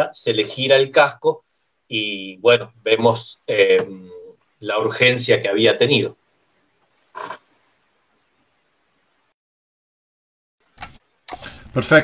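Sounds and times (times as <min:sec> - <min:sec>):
man talking over video call: 0:00.0 - 0:06.3, 0:11.4 - 0:12.0.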